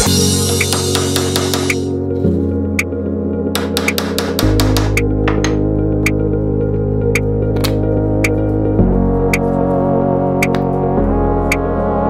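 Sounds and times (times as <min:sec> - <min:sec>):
synthesizer chords: 0:00.0 - 0:12.0
light ticking beat: 0:08.2 - 0:08.4.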